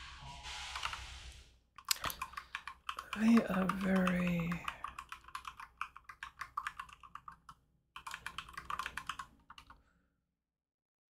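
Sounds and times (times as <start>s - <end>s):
computer keyboard typing: 0.8s - 1.0s, 1.8s - 9.8s.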